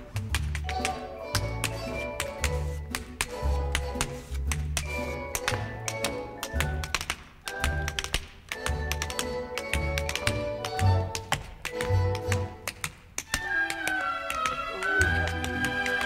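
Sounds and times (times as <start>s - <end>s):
orchestra playing show tune: 13.4s - 16.0s.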